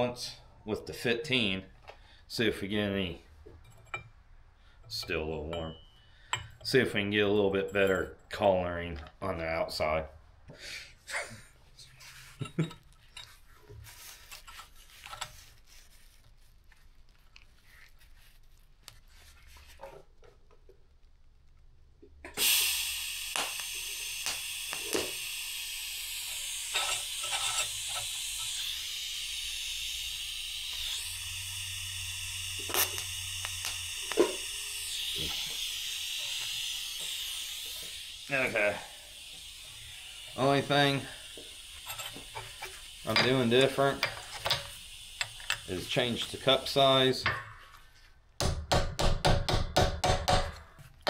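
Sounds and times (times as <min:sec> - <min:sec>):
welding arc crackles: 0:14.2 - 0:47.2
welding arc hissing: 0:22.3 - 0:47.2.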